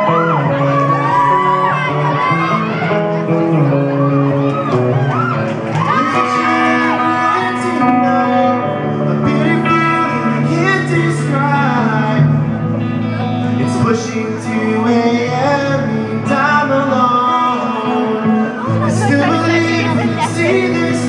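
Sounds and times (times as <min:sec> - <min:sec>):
electric guitar: 0:00.0 - 0:21.0
live rock band playing: 0:00.0 - 0:21.0.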